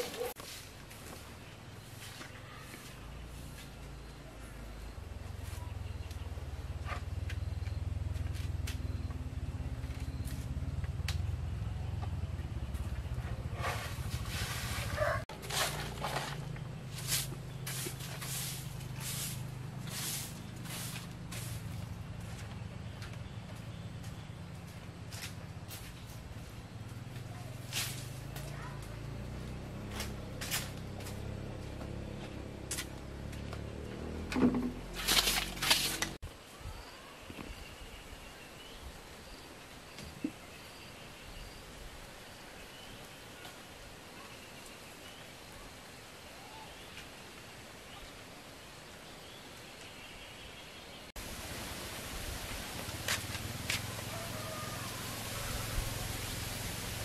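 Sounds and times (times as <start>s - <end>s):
broom sweeping concrete floor: 0.0s - 3.9s, 13.2s - 22.5s, 27.2s - 29.2s, 29.8s - 31.3s, 34.9s - 36.2s.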